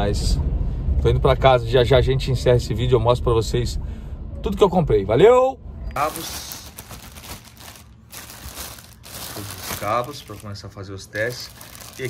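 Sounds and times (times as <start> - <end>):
cables pulled from bag: 6.0 - 10.6, 11.2 - 12.0
plastic bag crinkling: 6.0 - 12.0.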